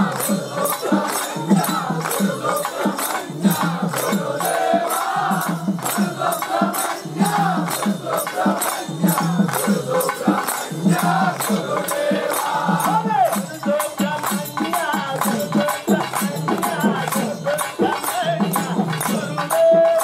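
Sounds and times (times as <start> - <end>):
hand claps: 0.0 - 20.0
men singing in chorus: 0.0 - 20.0
rattling percussion: 0.0 - 20.0.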